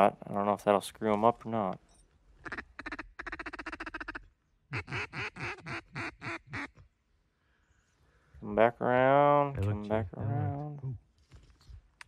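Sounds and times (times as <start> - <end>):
duck quacking: 2.4 - 6.8.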